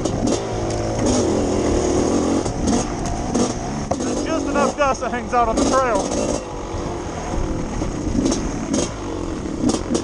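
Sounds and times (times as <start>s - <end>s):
dirt bike engine revving: 0.0s - 10.0s.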